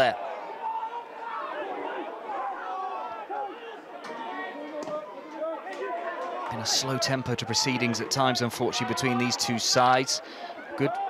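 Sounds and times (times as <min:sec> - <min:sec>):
crowd talking and shouting: 0:00.0 - 0:11.0.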